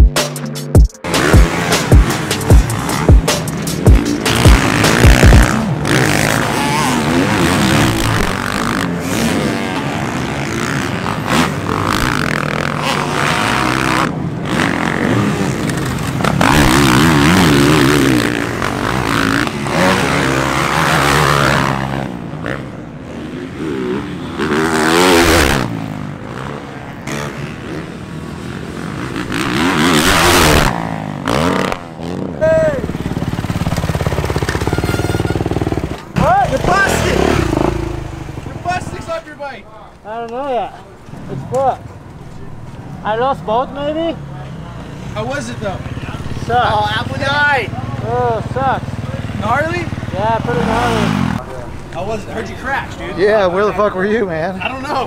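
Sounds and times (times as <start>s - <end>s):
dirt bike engines revving: 1.0s - 55.0s.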